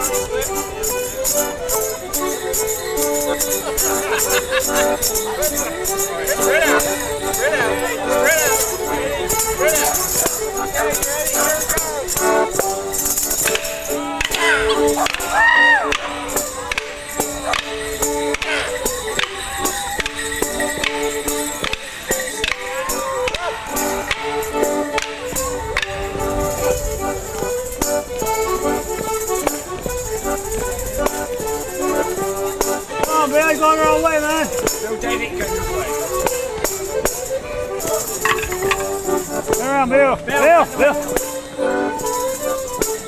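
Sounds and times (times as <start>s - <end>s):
live folk dance music: 0.0s - 43.0s
wooden sticks clacking: 12.6s - 26.0s, 37.8s - 39.7s.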